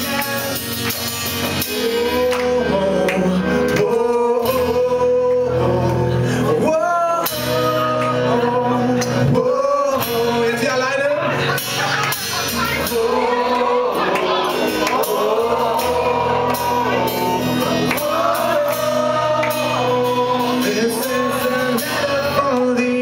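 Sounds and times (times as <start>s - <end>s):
guitar accompaniment: 0.0s - 23.0s
man singing long notes: 1.4s - 11.5s, 12.6s - 23.0s.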